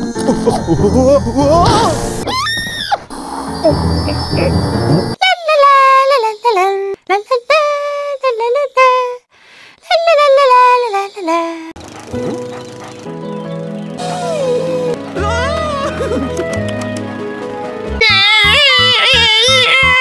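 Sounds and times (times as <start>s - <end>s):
squeaky cartoon voice speaking: 3.6s - 4.6s
background music: 12.0s - 20.0s.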